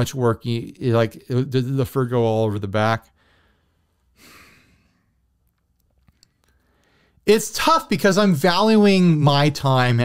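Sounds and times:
man sighing: 4.2s - 5.0s.

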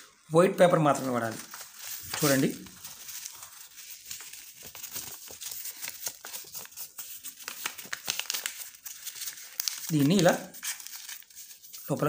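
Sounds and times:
paper folding and crinkling: 0.6s - 12.0s.

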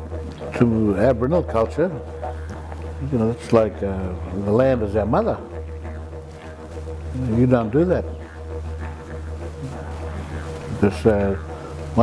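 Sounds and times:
low drone music: 0.0s - 12.0s.

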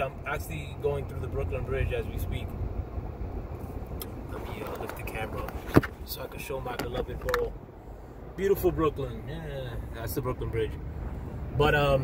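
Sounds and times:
car road noise rumble: 0.0s - 12.0s.

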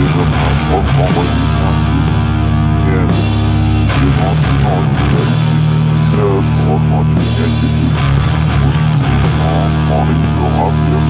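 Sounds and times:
short wavering notes: 0.0s - 11.0s
sustained low bass note: 0.0s - 11.0s.

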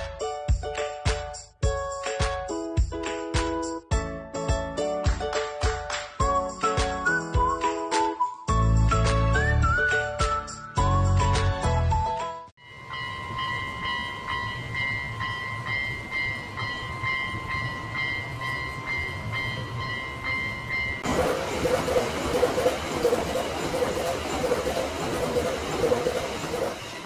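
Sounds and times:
level-crossing bell clanging: 12.6s - 27.0s
train passing: 12.6s - 27.0s
train wheels clattering on rails: 13.1s - 27.0s.

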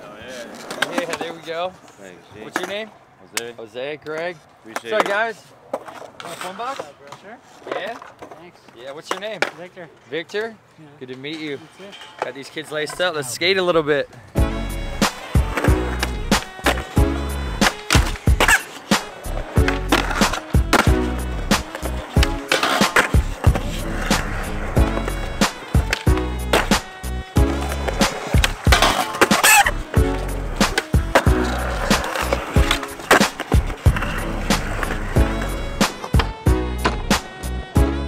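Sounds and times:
skateboard wheels rolling on concrete: 0.0s - 38.0s.

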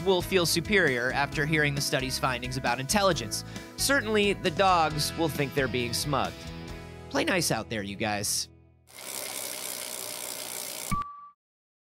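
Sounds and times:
freewheel hub ticking: 9.0s - 10.9s.

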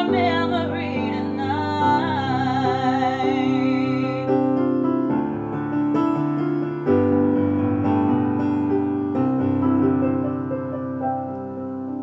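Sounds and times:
woman singing with vibrato: 0.0s - 4.6s
keyboard playing piano chords: 0.0s - 12.0s.

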